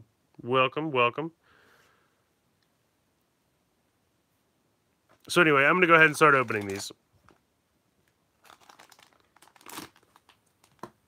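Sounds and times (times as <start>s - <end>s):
plastic packaging crinkling: 6.0s - 7.4s, 8.0s - 11.0s.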